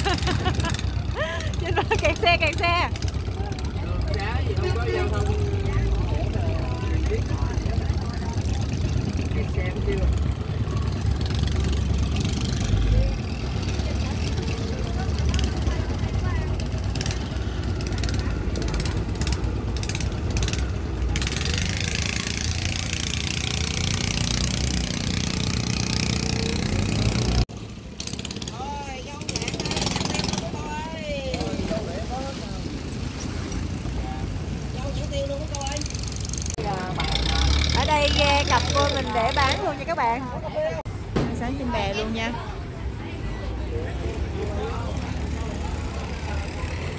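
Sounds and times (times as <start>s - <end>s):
people's voices: 0.0s - 27.4s, 28.4s - 46.9s
motorboat engine rumbling: 0.0s - 27.5s, 29.4s - 41.0s.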